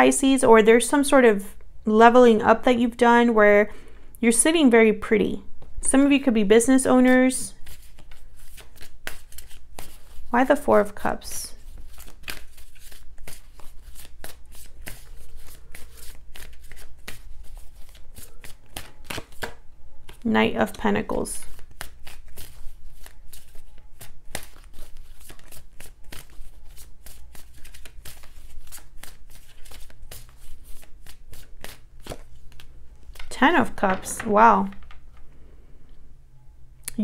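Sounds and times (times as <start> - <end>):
cards being shuffled: 7.6 - 20.3, 21.4 - 35.3.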